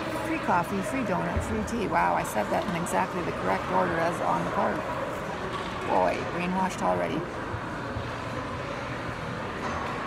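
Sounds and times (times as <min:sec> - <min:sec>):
shopping mall din: 0:00.0 - 0:10.0.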